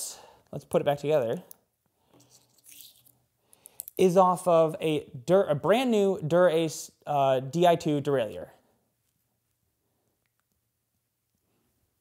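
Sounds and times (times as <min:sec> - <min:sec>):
faint scratching of plastic parts: 0:02.1 - 0:03.2.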